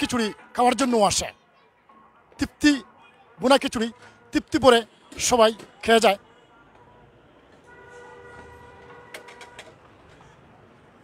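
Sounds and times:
distant vehicle horn: 3.9s - 9.8s.

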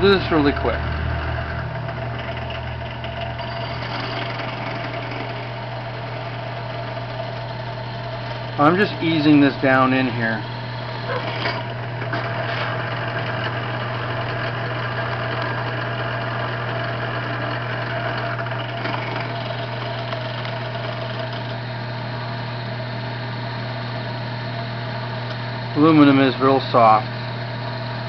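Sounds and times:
drill press motor humming: 0.0s - 28.0s
drill bit cutting aluminum: 1.8s - 21.8s.

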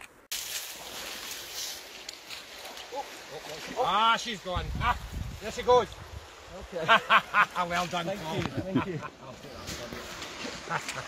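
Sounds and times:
river water rushing: 0.4s - 11.0s.

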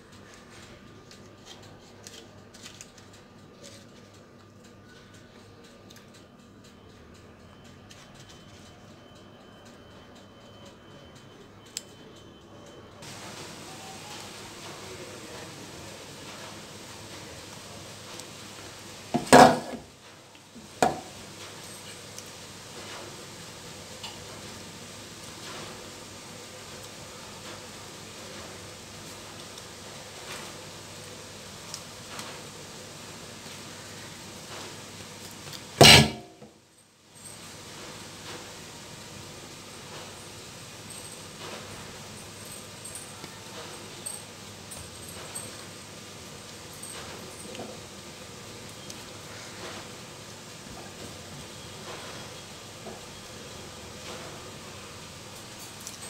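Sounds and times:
steady hiss: 13.0s - 56.0s.

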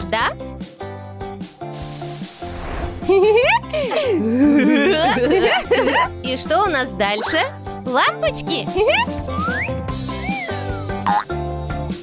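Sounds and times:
background music: 0.0s - 12.0s
spray paint can hissing: 1.7s - 3.0s.

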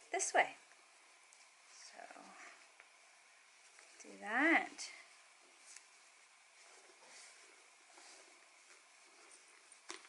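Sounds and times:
faint fabric rustling: 0.0s - 10.0s.

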